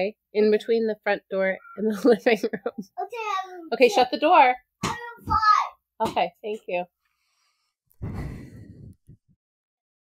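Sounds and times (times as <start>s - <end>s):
woman sighing: 8.0s - 9.1s.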